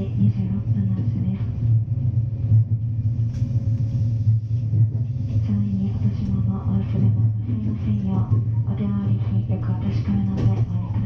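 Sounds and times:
train rumbling on rails: 0:00.0 - 0:11.0.

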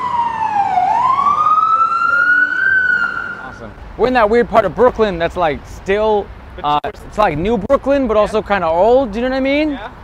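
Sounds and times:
emergency vehicle siren wailing: 0:00.0 - 0:03.7.

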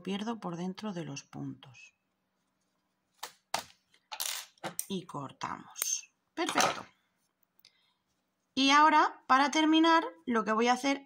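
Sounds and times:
soft rustles of yarn handling: 0:01.4 - 0:03.2, 0:07.0 - 0:08.8.

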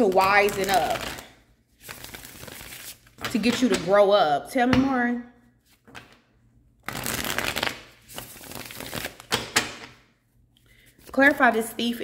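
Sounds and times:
cards being shuffled: 0:05.7 - 0:06.2, 0:06.8 - 0:10.0.

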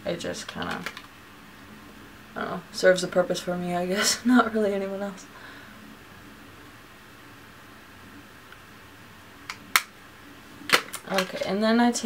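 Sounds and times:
plastic compacts clicking: 0:00.4 - 0:01.1, 0:10.7 - 0:11.5.

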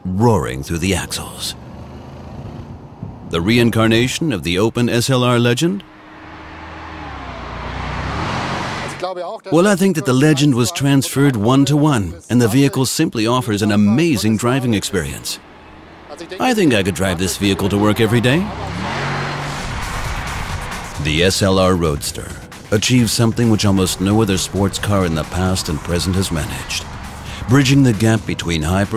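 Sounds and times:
road noise: 0:00.0 - 0:28.9
car engine approaching at speed: 0:00.7 - 0:09.0, 0:13.3 - 0:28.9
background music: 0:03.4 - 0:28.9.

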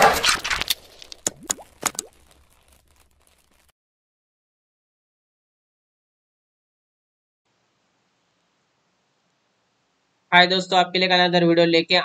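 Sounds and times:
quick sharp pops: 0:00.0 - 0:03.7.

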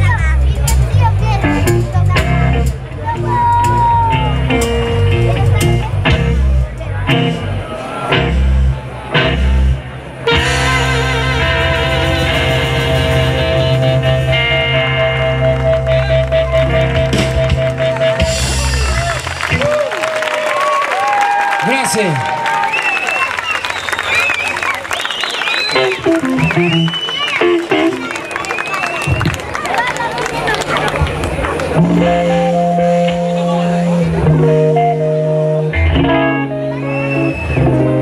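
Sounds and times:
blues band playing: 0:00.0 - 0:21.1, 0:23.4 - 0:38.0
harmonica holding long tone: 0:10.3 - 0:18.6
audience applauding and cheering: 0:15.0 - 0:31.8.

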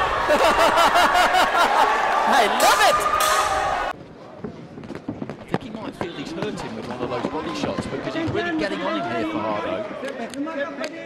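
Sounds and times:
voices in a hall: 0:05.4 - 0:11.0.

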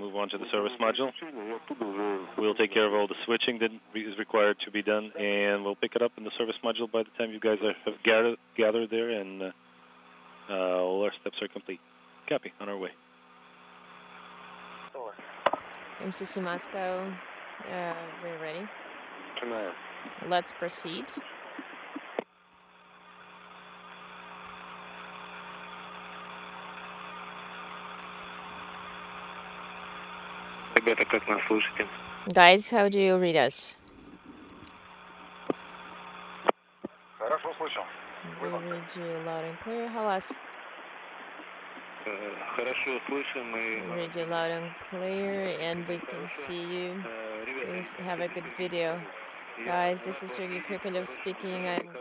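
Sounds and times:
low electrical hum: 0:00.0 - 0:52.0
radio channel hiss: 0:00.0 - 0:52.0.

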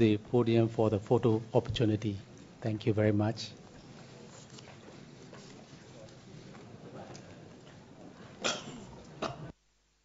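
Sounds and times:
crowd murmur: 0:03.8 - 0:09.5
person coughing: 0:08.4 - 0:09.5.

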